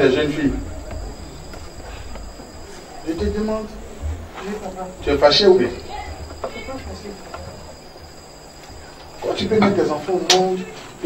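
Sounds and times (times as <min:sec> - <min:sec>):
low hum: 0:00.0 - 0:09.3.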